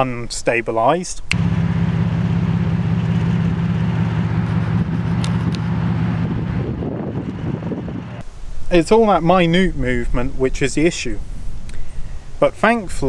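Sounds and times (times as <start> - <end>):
car engine idling: 1.3 - 8.2.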